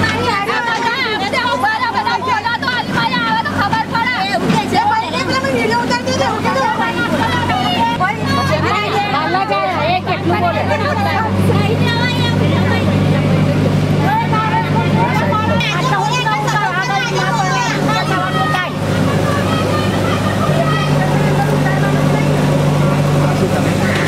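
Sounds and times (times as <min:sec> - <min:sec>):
people talking over one another: 0:00.0 - 0:24.0.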